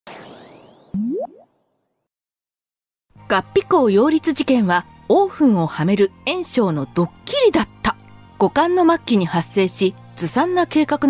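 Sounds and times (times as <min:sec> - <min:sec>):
cartoon boing rising in pitch: 0:01.0 - 0:01.5.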